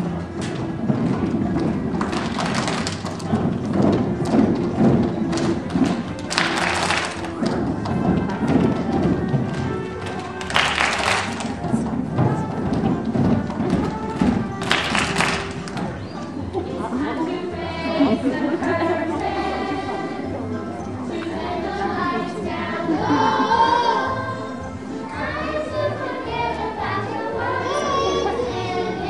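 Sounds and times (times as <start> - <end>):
thuds: 0.0 - 16.2
children singing over music: 0.0 - 29.0
hands clapping: 1.6 - 11.8, 13.0 - 16.2.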